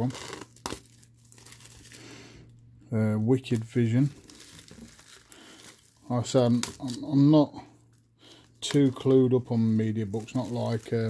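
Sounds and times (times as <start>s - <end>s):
plastic wrapping crinkling: 0.0s - 2.6s, 3.3s - 11.0s.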